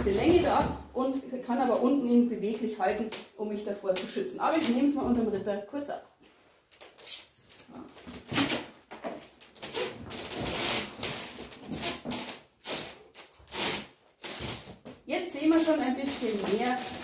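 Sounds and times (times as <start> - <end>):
footsteps on creaking floorboards: 0.0 - 1.2, 7.6 - 15.0, 15.6 - 17.0.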